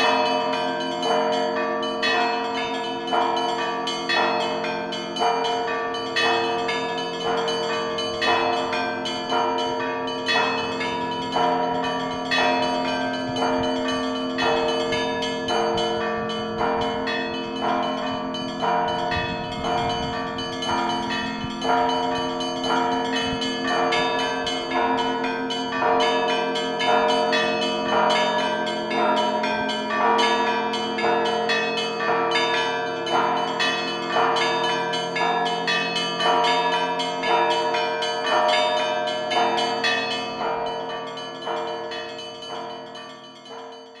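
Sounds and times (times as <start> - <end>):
church bells ringing: 0.0 - 44.0.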